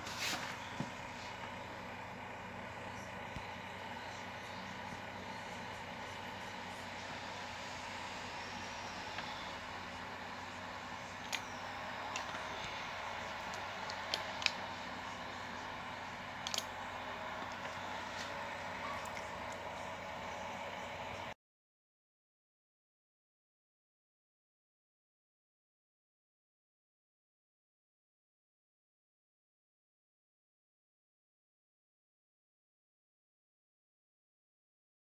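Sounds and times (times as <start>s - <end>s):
bench equipment hum: 0.0s - 21.4s.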